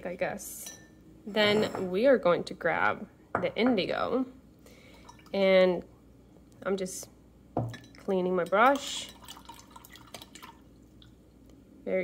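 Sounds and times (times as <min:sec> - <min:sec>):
woman speaking: 0:01.3 - 0:04.4, 0:06.6 - 0:07.1, 0:08.1 - 0:09.1
faint water drips: 0:07.7 - 0:11.6.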